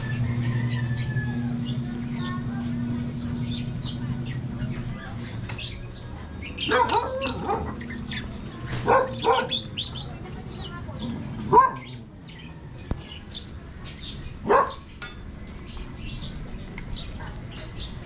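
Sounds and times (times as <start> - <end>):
low street ambience hum: 0.0 - 18.0
dog barking: 6.6 - 7.9, 8.8 - 9.7, 11.4 - 12.0, 14.4 - 14.8.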